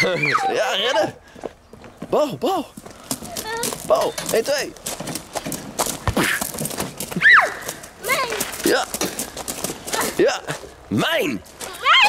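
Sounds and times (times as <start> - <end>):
footsteps on gravel: 1.3 - 12.0
adult calling playfully: 2.1 - 4.6, 7.2 - 9.2.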